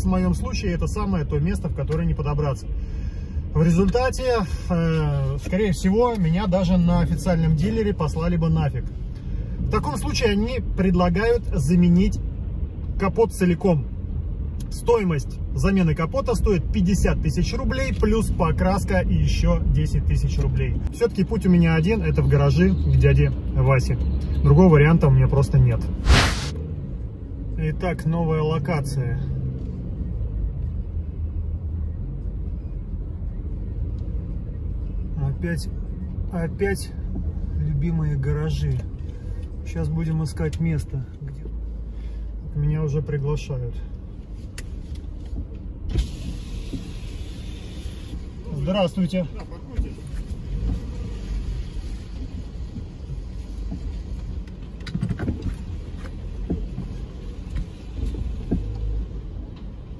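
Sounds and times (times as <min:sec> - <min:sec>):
engine and tyre rumble in car: 0:00.0 - 0:59.9.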